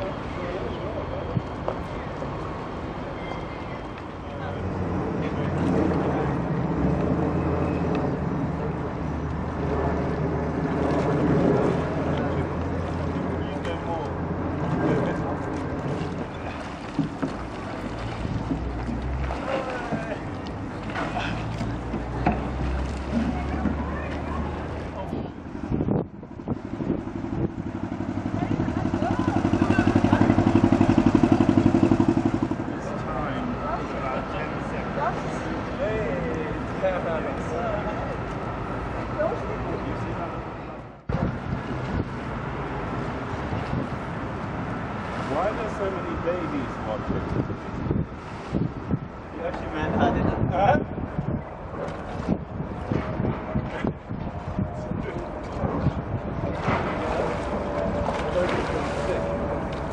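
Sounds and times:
diesel boat engine chugging: 26.6 - 34.0
people talking indistinctly: 45.3 - 47.5
steady low drone: 50.2 - 59.9.

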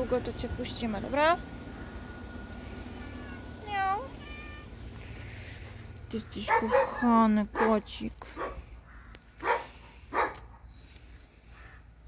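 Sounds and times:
cat meowing: 2.9 - 4.8.

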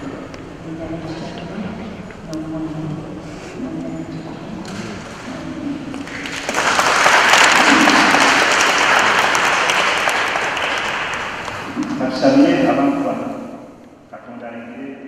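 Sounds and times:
congregation applauding: 5.9 - 12.4.

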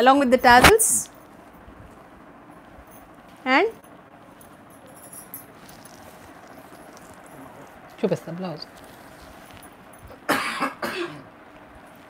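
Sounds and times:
person coughing: 10.2 - 11.3.

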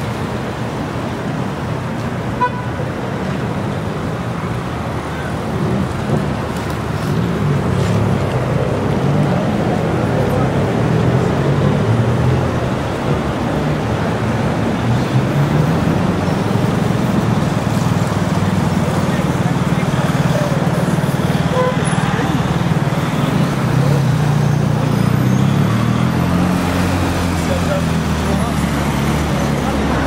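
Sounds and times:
traffic noise: 0.0 - 30.0
voices: 3.0 - 30.0.

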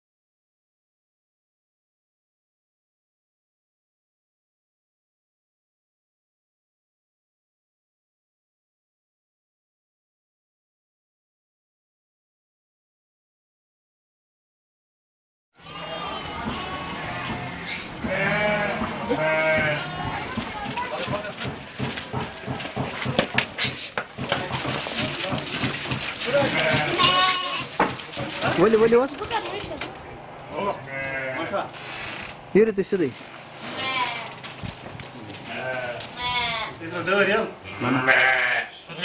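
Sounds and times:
sheep bleating: 15.6 - 20.2, 26.3 - 27.7, 30.6 - 31.7, 33.6 - 34.4, 35.4 - 36.8, 37.6 - 39.0.

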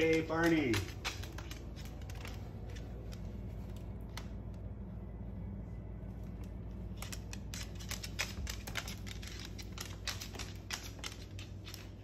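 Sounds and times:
bird claws and beak tapping floor: 0.0 - 4.3, 6.9 - 12.0
low steady hum: 0.0 - 12.0.

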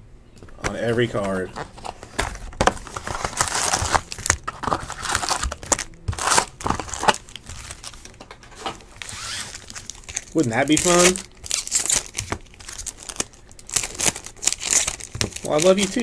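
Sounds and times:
foil packs rustling and crinkling: 0.7 - 16.0
cardboard box tearing: 2.2 - 8.0.

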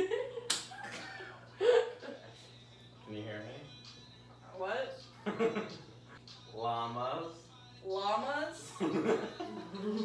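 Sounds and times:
hand slap: 0.5 - 0.7
people laughing: 8.8 - 10.0.

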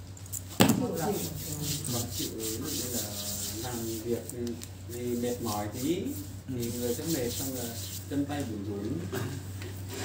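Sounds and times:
palms rubbing together: 0.6 - 8.7.

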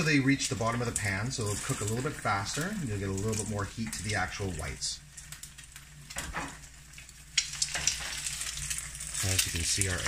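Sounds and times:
eggs sizzling in oil: 0.0 - 10.0.

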